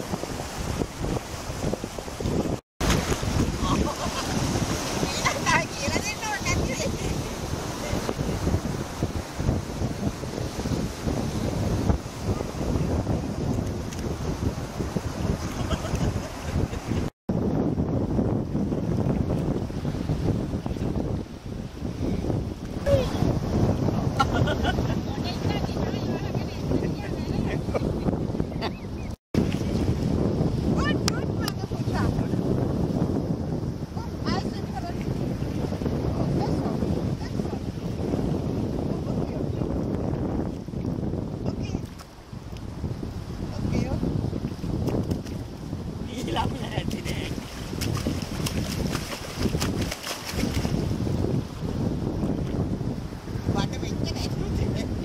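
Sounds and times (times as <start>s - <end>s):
shallow surf washing: 0.0s - 55.0s
wind buffeting microphone: 0.0s - 55.0s.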